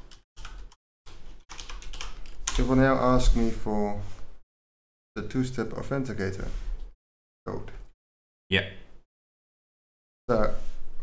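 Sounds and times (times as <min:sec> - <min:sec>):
keyboard keys clicking: 0:01.5 - 0:02.6.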